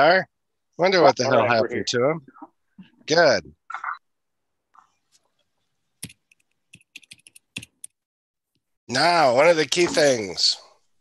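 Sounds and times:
computer keyboard typing: 0:06.0 - 0:08.0.

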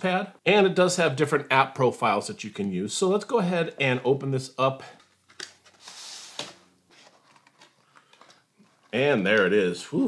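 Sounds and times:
cardboard rustling: 0:05.0 - 0:09.2
cardboard box sliding out: 0:05.8 - 0:06.6.

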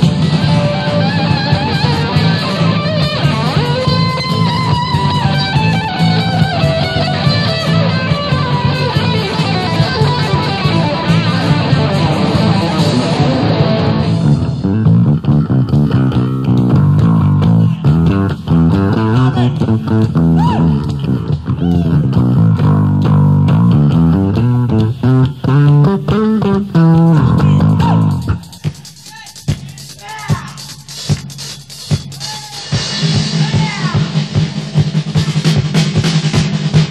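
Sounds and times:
live band with guitar and bass: 0:00.0 - 0:28.8.

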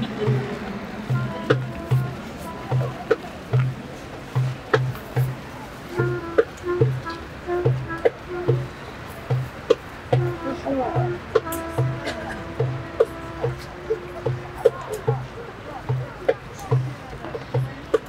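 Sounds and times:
wind instrument melody: 0:00.0 - 0:17.8
steady low drumbeat: 0:00.0 - 0:18.0
sharp percussive clicks: 0:11.4 - 0:11.9.

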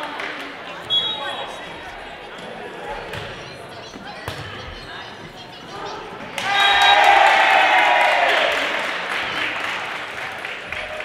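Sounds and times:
volleyball hits: 0:04.2 - 0:04.7.

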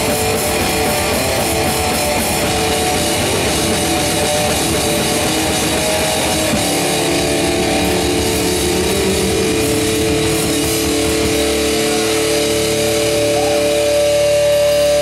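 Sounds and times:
drums and cymbals: 0:00.0 - 0:15.0
electric guitar feedback: 0:00.0 - 0:15.0.

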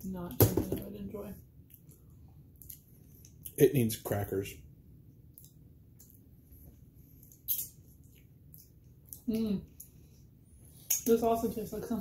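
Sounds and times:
mouth clicks and smacks eating: 0:02.6 - 0:03.6, 0:05.3 - 0:06.3, 0:07.2 - 0:10.0.

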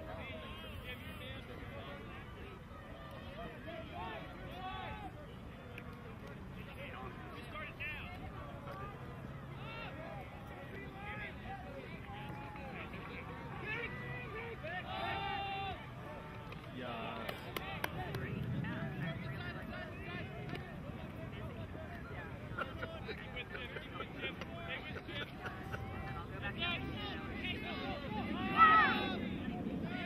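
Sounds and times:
distant shouts and calls: 0:07.2 - 0:18.1, 0:24.9 - 0:30.0.

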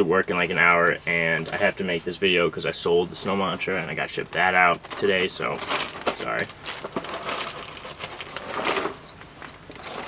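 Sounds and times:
crackers rattling in cardboard box: 0:04.8 - 0:10.0.

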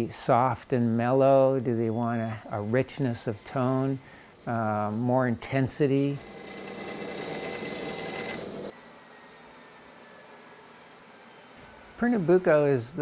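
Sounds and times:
bandsaw cutting wood: 0:02.8 - 0:08.8.

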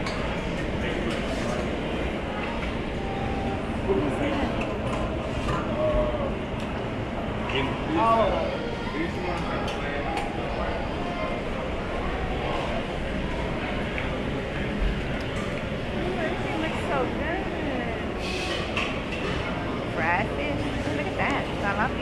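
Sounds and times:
chatter of diners: 0:00.0 - 0:22.0.

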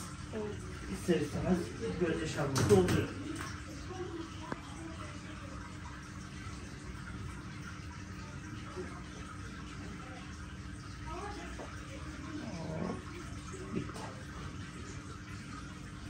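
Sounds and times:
low room hum: 0:00.0 - 0:16.0
faint voice: 0:11.0 - 0:15.1.

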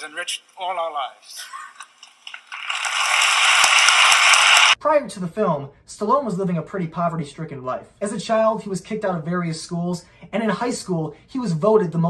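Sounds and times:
audience applauding: 0:01.8 - 0:04.8.

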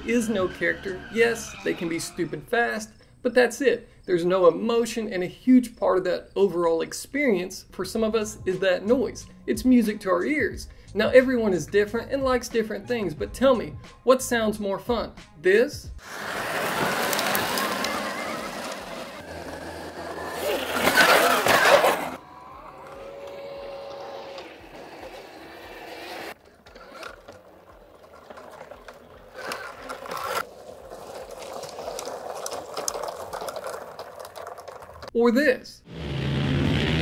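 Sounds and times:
tyres hissing on dirt: 0:16.0 - 0:19.2.

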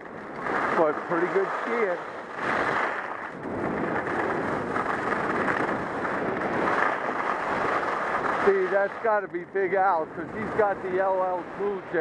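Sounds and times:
skis scraping over snow: 0:00.0 - 0:12.0
wind rushing over microphone: 0:00.0 - 0:12.0.

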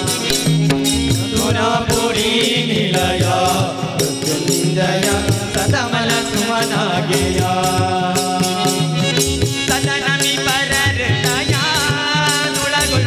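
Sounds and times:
men singing devotional chant: 0:00.0 - 0:13.0.

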